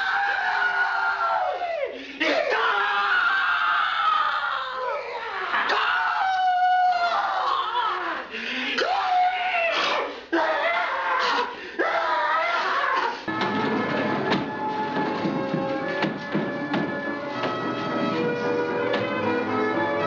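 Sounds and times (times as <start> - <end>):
people shrieking and wailing: 0.0 - 13.4.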